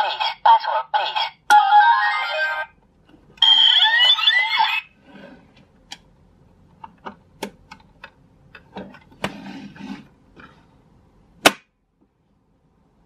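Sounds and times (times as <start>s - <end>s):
loud sharp plastic snap: 11.4s - 11.8s.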